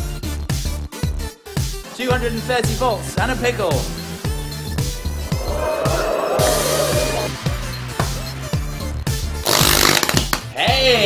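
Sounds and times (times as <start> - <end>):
wavering tone: 5.2 - 7.4.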